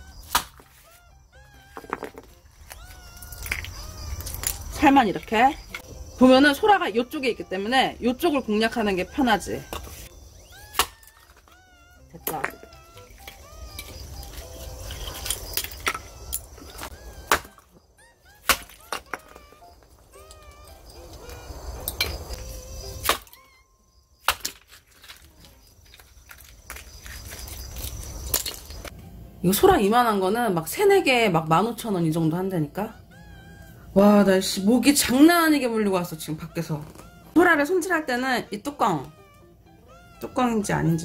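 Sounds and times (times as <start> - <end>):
high gliding animal calls: 0.0 - 24.0, 32.0 - 41.0
shell pieces rustling and clinking: 12.6 - 16.9, 24.5 - 28.9
cat meowing: 16.2 - 23.8, 32.9 - 34.0, 36.8 - 37.4, 39.0 - 41.0.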